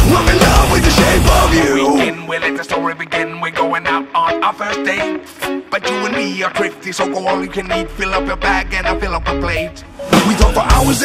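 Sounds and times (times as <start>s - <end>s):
heavy metal band music: 0.0s - 11.0s.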